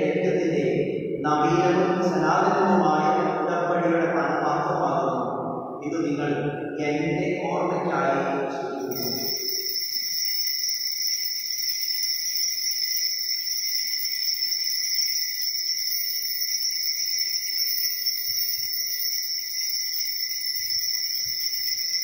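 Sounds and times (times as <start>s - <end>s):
altar bells ringing: 8.1s - 22.0s.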